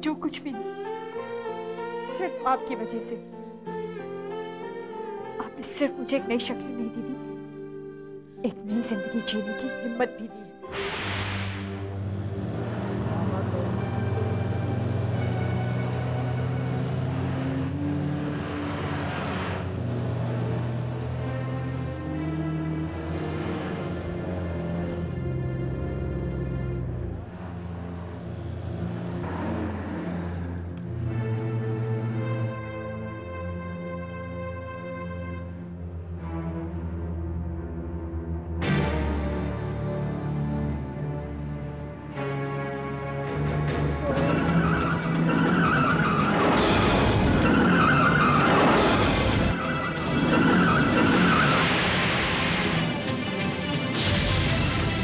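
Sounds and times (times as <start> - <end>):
background music: 0.0 - 55.0
heavy vehicle engine hum: 10.6 - 55.0
tyres screeching: 10.7 - 34.5, 43.4 - 54.0.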